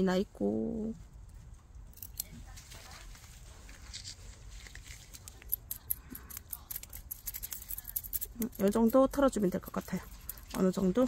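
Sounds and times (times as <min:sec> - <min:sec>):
metal tweezers clicking: 0:05.1 - 0:11.0.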